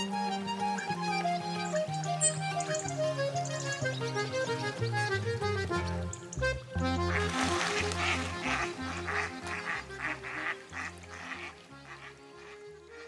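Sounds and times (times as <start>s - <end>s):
background music: 0.0s - 13.0s
ducks quacking: 0.0s - 13.0s.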